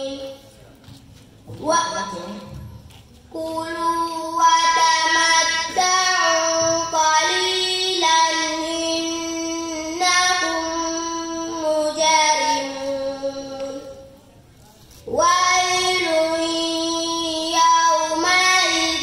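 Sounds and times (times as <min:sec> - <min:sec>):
girl chanting recitation: 0:00.0 - 0:00.5, 0:01.5 - 0:14.2, 0:15.0 - 0:19.0.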